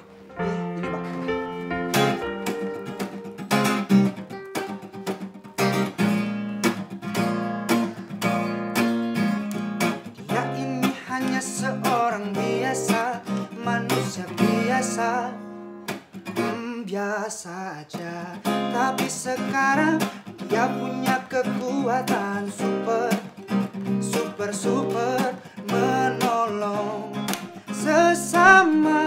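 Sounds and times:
acoustic guitar strumming: 0.0s - 29.0s.

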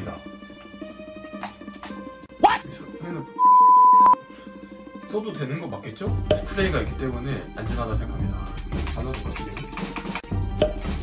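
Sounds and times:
quiet background music: 0.0s - 11.0s
high-pitched bleep: 3.4s - 4.2s.

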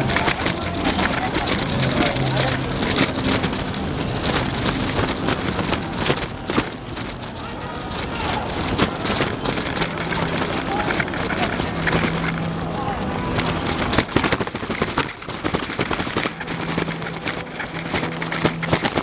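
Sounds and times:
bicycle rattling and rushing: 0.0s - 19.0s
people's voices: 0.0s - 19.0s
small knocks and clicks: 0.0s - 19.0s
steady low hum: 0.0s - 19.0s.

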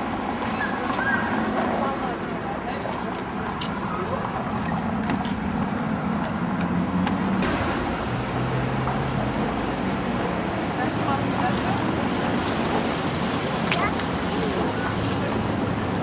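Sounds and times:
cars passing on street: 0.0s - 16.0s.

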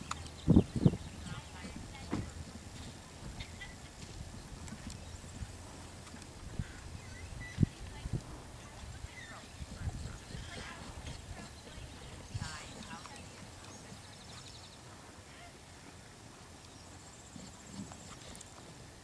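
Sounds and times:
hooves thudding on sand: 0.0s - 15.2s
faint voices: 0.0s - 15.9s.

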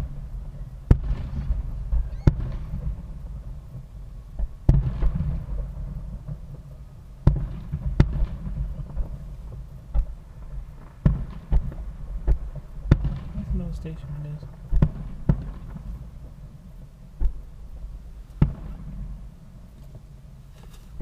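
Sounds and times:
distant fireworks bangs: 0.0s - 20.2s
steady low rumble: 0.0s - 21.0s.

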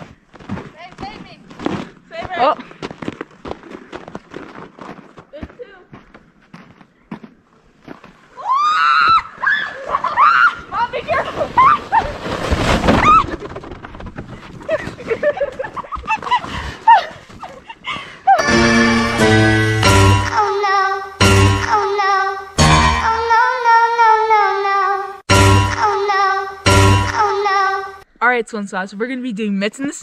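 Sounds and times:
crunching steps in snow: 0.0s - 8.2s
sled rushing through snow: 9.7s - 15.6s
music: 18.4s - 20.4s, 21.2s - 21.9s, 22.6s - 23.3s, 25.3s - 26.0s, 26.6s - 27.4s.

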